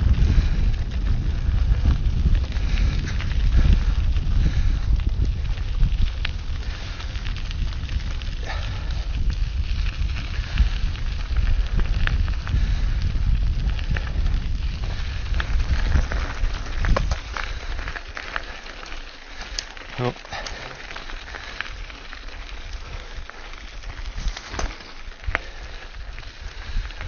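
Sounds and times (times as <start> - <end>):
bike clicks and rattles: 0.0 - 27.0
bike tyres crunching on gravel: 0.0 - 27.0
wind rumble on microphone: 0.0 - 27.0.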